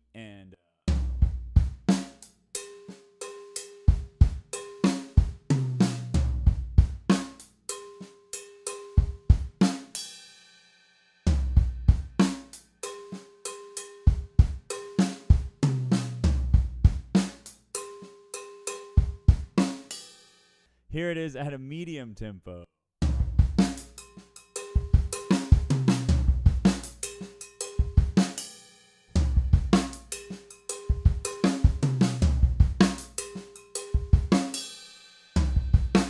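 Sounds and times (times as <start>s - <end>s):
cowbell: 2.6s - 3.9s, 12.9s - 14.1s, 17.8s - 19.0s, 24.0s - 25.3s, 27.1s - 28.0s, 30.5s - 31.4s
drum kit funk groove: 23.0s - 28.4s, 29.2s - 34.7s, 35.4s - 36.0s.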